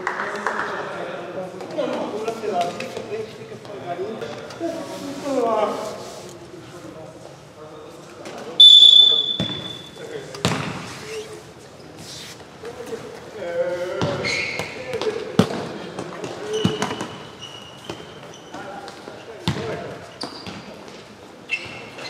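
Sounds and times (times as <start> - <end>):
referee's whistle blast: 8.6 - 10.0.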